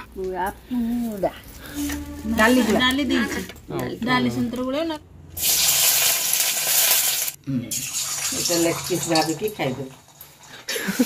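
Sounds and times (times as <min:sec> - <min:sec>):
onions sizzling in hot oil: 0:05.4 - 0:10.6.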